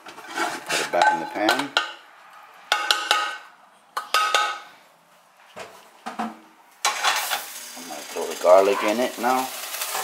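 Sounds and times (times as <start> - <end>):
metal pot knocking on saucepan: 2.7 - 3.4.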